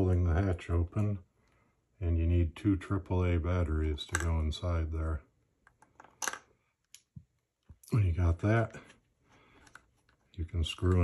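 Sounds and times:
batteries and plastic clicking: 5.6 - 7.2.

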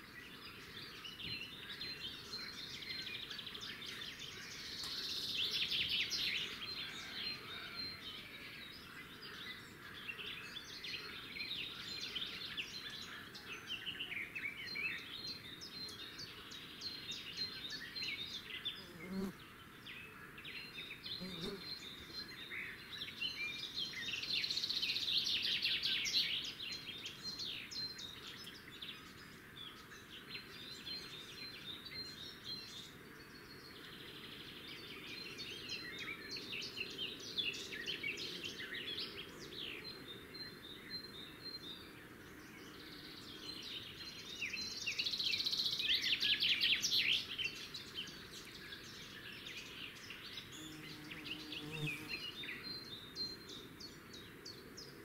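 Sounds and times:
small birds chirping and twittering: 0.0 - 55.0.

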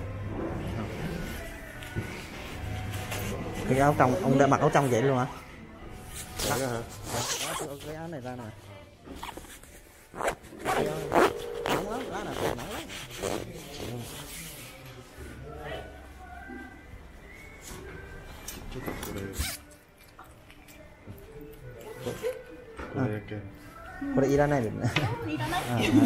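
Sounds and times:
jacket zipper pulled: 6.3 - 7.8, 9.2 - 14.3.

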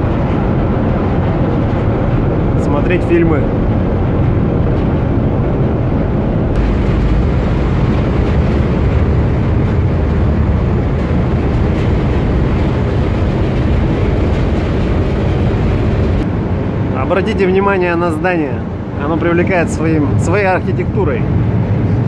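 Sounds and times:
ship engine rumble: 0.0 - 22.0.

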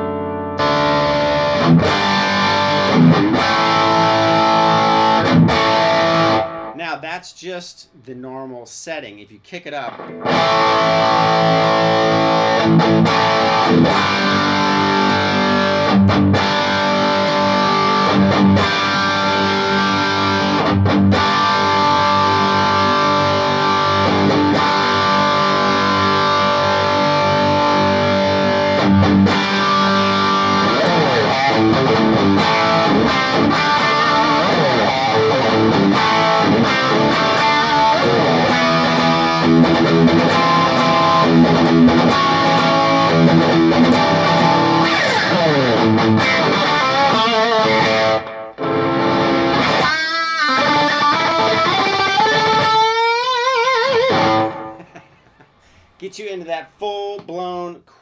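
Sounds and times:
overdriven electric guitar: 0.0 - 6.8, 9.8 - 55.9.

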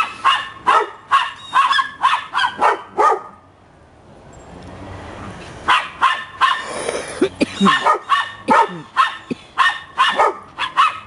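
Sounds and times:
dogs barking: 0.0 - 3.5, 5.7 - 6.8, 7.4 - 11.0.

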